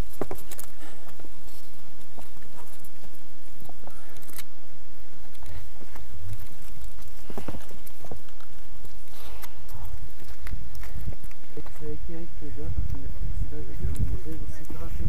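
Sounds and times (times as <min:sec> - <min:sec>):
shoes striking stone: 0:00.0 - 0:01.2
steady low rumble: 0:00.0 - 0:15.0.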